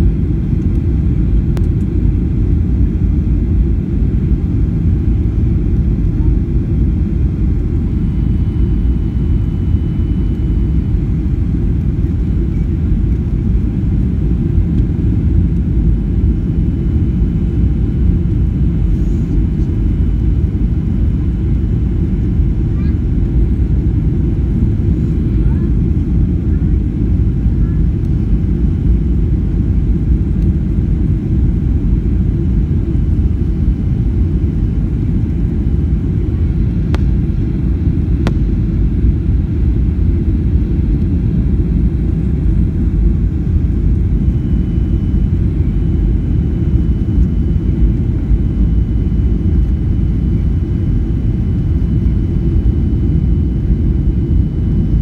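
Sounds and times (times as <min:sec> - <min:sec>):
airliner engine rumble in cabin: 0:00.0 - 0:55.0.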